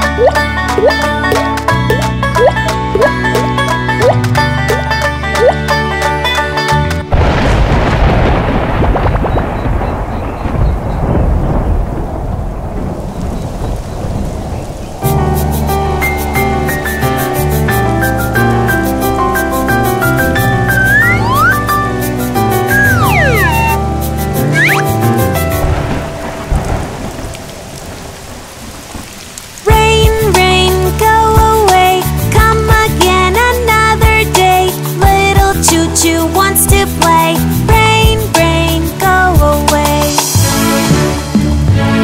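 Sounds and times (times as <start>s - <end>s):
bright music with a beat: 0.0s - 7.1s, 17.2s - 25.7s
thunder rumbling: 7.1s - 30.2s
rain hiss: 11.0s - 20.7s, 21.7s - 41.2s
music with singing: 29.7s - 42.0s.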